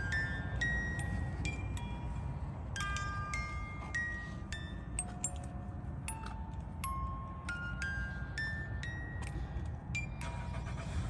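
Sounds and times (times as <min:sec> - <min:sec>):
music box playing slow tune: 0:00.0 - 0:11.0
steady low rumble: 0:00.0 - 0:11.0.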